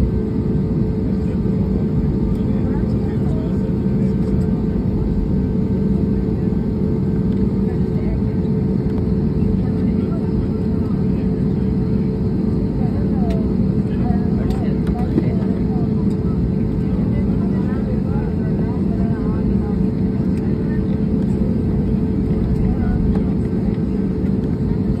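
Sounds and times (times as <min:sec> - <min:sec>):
jet engine rumble and hum: 0:00.0 - 0:25.0
passengers murmuring: 0:00.0 - 0:25.0.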